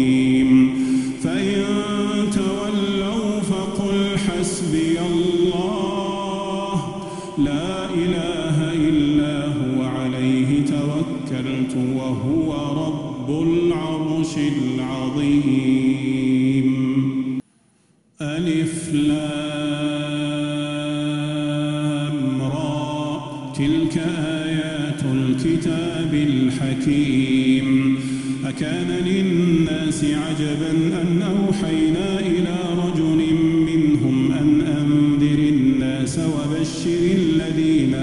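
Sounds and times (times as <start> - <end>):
man chanting recitation: 0.0 - 17.4, 18.2 - 38.0.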